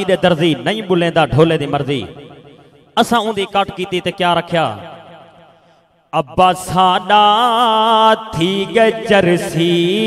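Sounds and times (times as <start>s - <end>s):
man chanting into microphone: 0.0s - 2.4s, 6.1s - 10.0s.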